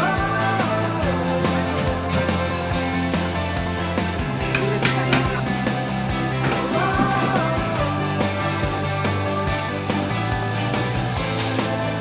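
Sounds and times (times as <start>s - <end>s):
background music with steady beat: 0.0s - 12.0s
held bass line: 0.0s - 12.0s.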